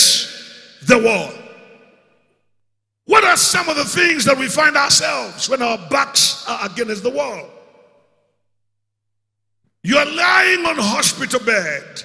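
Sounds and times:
man speaking: 0.0 - 1.4, 3.1 - 7.5, 9.8 - 12.0.

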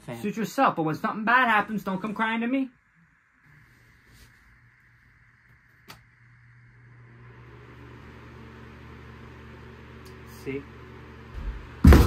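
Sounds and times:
desk fan motor hum: 1.1 - 12.0.

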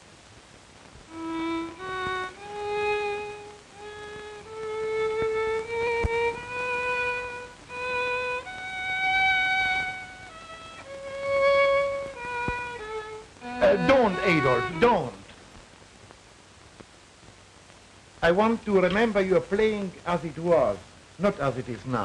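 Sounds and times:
solo violin slow melody: 1.1 - 15.2.

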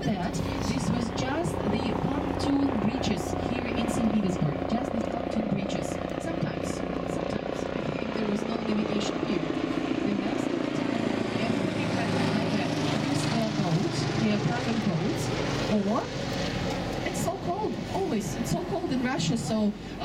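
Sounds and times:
boat engine drone: 0.0 - 20.0
helicopter flying overhead: 0.0 - 20.0.

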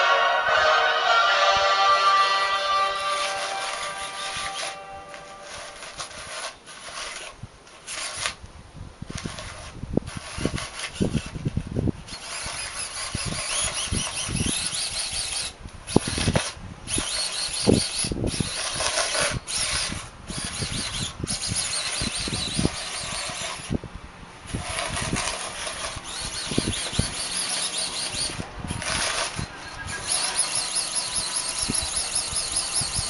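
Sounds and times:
plow blade scraping snow: 0.0 - 8.4, 9.2 - 32.9
robot gear motors whining: 2.8 - 8.4, 9.1 - 23.8, 24.5 - 33.0.

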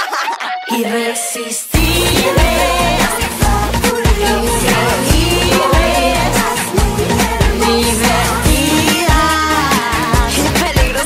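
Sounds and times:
female voices singing pop song: 0.6 - 11.0
steady drum beat: 1.8 - 11.0.

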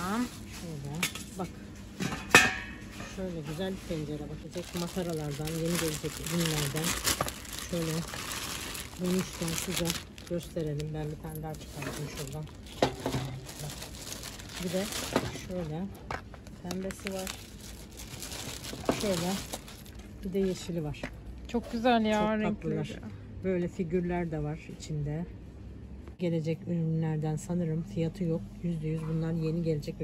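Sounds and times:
plastic packaging rustling: 3.5 - 20.1.

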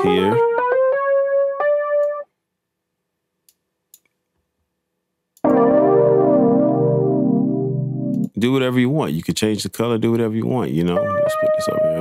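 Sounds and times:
electric piano chord: 5.4 - 8.3
electric piano note: 5.4 - 8.3.

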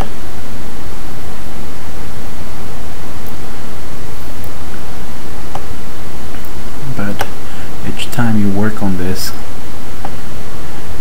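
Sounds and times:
loud background hiss: 0.0 - 11.0.

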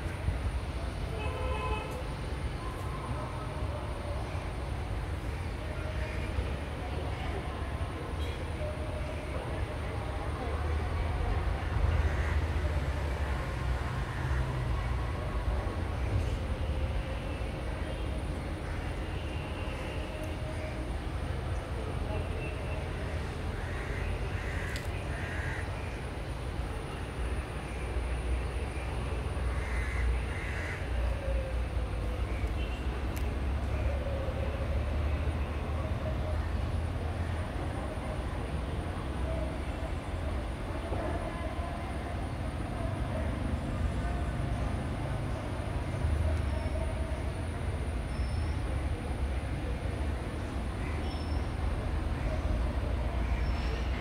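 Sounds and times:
faint scattered voices: 0.0 - 54.0.

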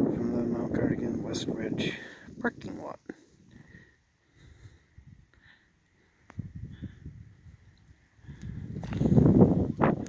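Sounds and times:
wind buffeting microphone: 0.0 - 5.3, 6.2 - 10.0.

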